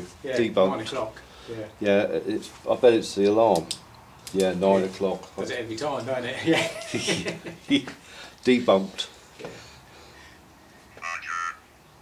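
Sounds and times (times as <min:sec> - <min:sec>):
tinny synthesized voice speaking: 0:11.0 - 0:11.6.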